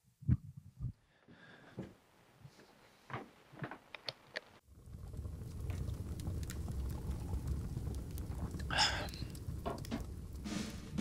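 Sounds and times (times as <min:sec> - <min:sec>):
small crackles and pops: 0:03.1 - 0:11.0
low rumble: 0:04.7 - 0:11.0.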